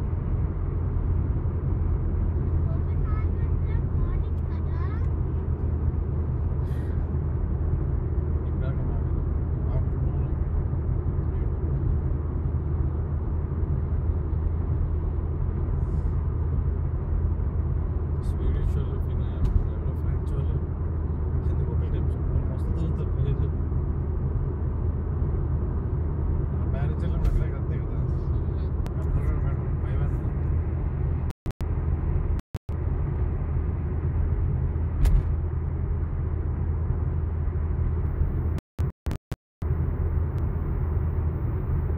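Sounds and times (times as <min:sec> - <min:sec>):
car road and engine noise: 0:00.0 - 0:41.9.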